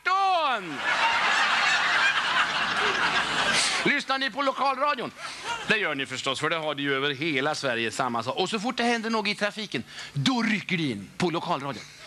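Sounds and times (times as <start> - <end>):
audience laughing: 0.6 - 5.9.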